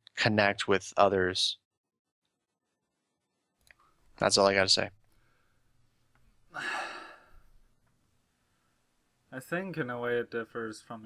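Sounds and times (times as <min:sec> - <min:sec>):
person sighing: 0:06.5 - 0:07.5.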